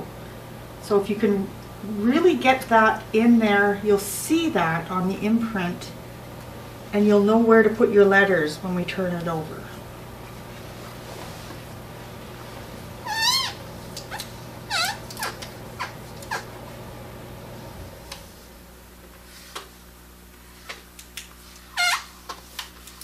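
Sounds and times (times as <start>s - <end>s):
low steady hum: 0.0s - 23.0s
high wavering animal calls: 13.0s - 16.6s, 21.7s - 22.1s.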